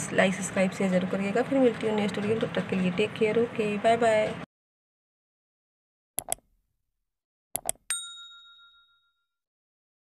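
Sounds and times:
bright bell ding: 0:07.9 - 0:09.4.

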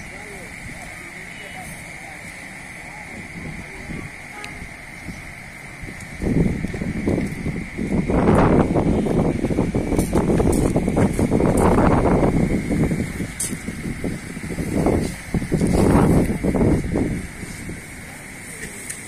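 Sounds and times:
wind buffeting microphone: 0:03.1 - 0:18.0.

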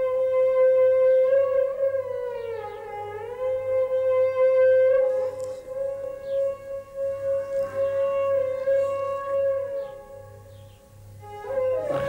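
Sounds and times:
long held melodic instrument note: 0:11.2 - 0:12.0.

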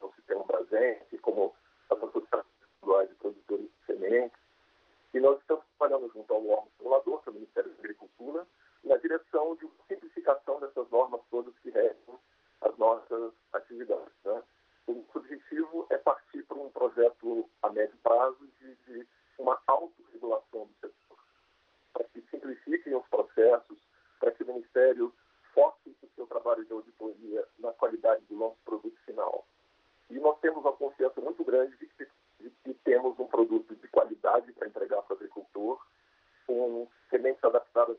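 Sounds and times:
man talking over phone line: 0:00.0 - 0:04.3, 0:05.2 - 0:21.1, 0:22.0 - 0:29.4, 0:30.1 - 0:35.8, 0:36.5 - 0:37.9.

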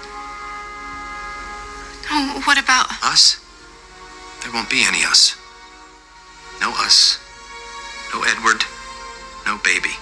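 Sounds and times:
soft sustained film score chords: 0:00.0 - 0:10.0.

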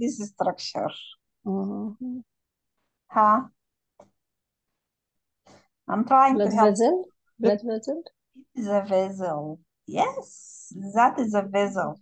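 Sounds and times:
woman speaking: 0:00.0 - 0:02.0, 0:05.9 - 0:12.0.

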